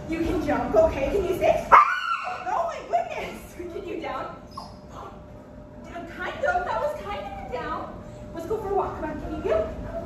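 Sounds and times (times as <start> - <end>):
young dog crying: 1.7 - 2.4.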